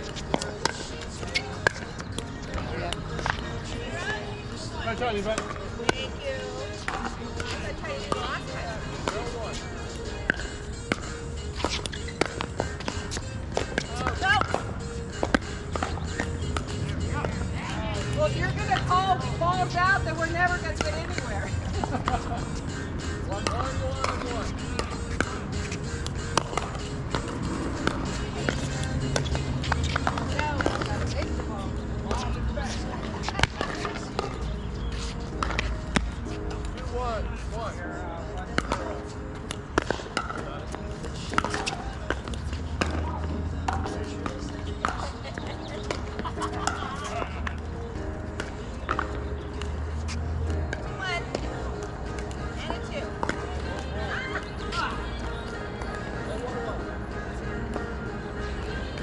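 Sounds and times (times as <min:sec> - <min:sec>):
background music: 0:00.0 - 0:59.0.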